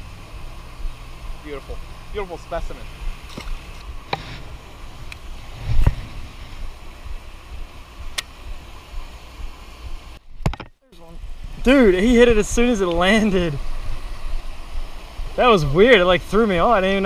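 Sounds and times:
rushing outdoor noise: 0.0s - 17.0s
low thump: 5.6s - 6.7s
sharp clicks: 8.1s - 8.4s.

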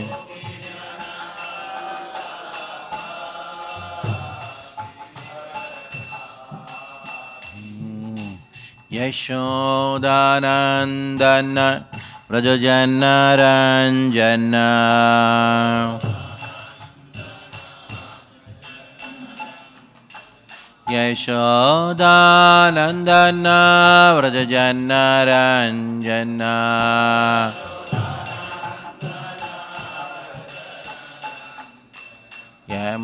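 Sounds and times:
person singing devotional song: 0.0s - 20.0s, 20.8s - 33.0s
hand cymbals ringing: 0.0s - 33.0s.

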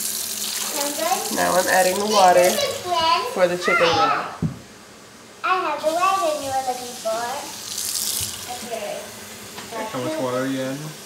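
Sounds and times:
faucet pouring into cup: 0.0s - 2.9s, 5.8s - 8.7s
high-pitched child voices: 0.6s - 4.5s, 5.4s - 7.6s.

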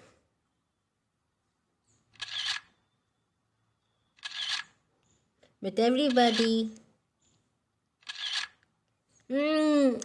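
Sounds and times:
camera shutter: 2.1s - 2.7s, 4.2s - 4.8s, 6.3s - 6.5s, 8.0s - 8.6s.

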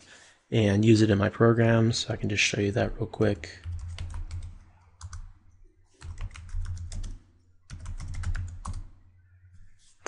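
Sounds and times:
computer keyboard typing: 3.6s - 5.3s, 6.0s - 8.9s.

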